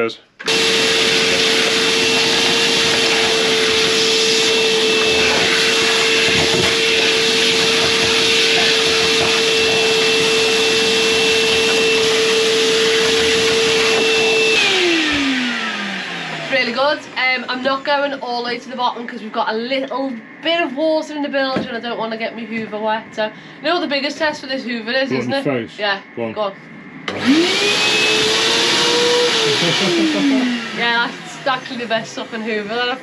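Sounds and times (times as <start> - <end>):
vacuum cleaner motor whine: 0.0 - 20.6, 27.1 - 33.0.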